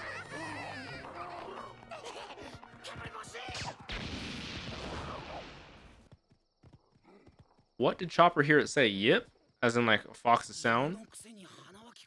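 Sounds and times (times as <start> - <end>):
cartoon character voices: 0.0 - 3.8, 11.0 - 12.0.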